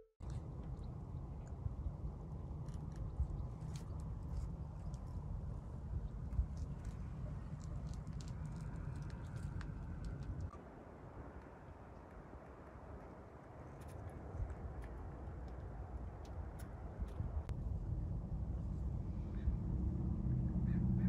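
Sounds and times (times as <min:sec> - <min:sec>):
wind rumble on microphone: 0:00.2 - 0:21.0
faint clicks and crackles: 0:02.4 - 0:10.7.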